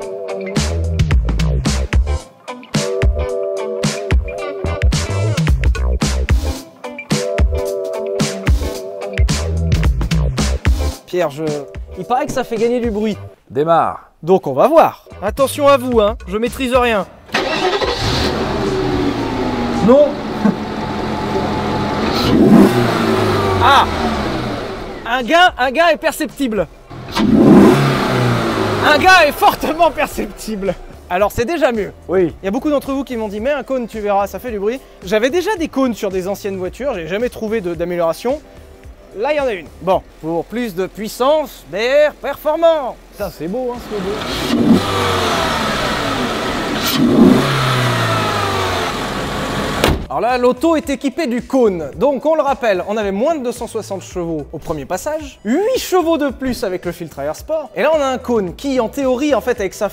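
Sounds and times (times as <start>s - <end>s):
car engine idling: 17.3s - 25.8s, 26.7s - 31.2s, 43.8s - 50.1s.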